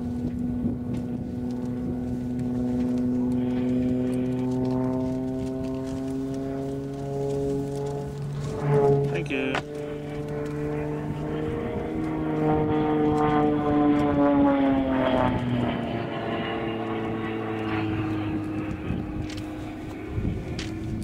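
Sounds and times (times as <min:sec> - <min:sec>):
propeller airplane flying overhead: 0:00.0 - 0:21.0.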